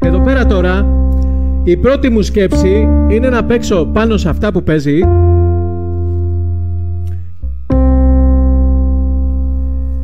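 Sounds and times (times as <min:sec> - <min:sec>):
held electronic keyboard chord: 0:00.0 - 0:10.0.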